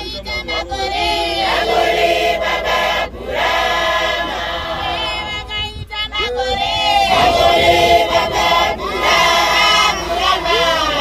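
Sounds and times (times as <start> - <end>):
congregation choir singing: 0.0 - 11.0.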